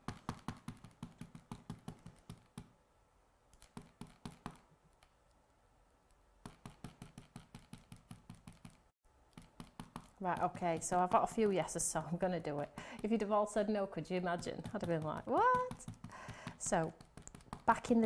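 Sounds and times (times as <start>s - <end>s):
rapid tapping on hard plastic: 14.4s - 18.0s.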